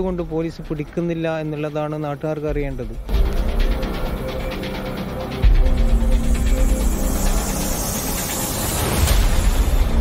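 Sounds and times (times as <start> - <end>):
rushing hiss: 6.2 - 10.0.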